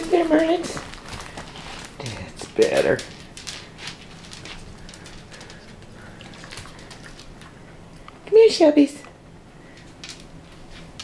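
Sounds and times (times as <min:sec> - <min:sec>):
dogs' claws clicking on floor: 0:00.0 - 0:08.4, 0:09.0 - 0:11.0.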